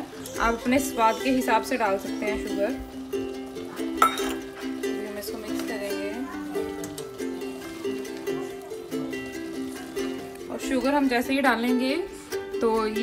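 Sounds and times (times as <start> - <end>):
plucked ukulele-like music: 0.0 - 13.0
spatula clinking steel pan: 3.9 - 4.8.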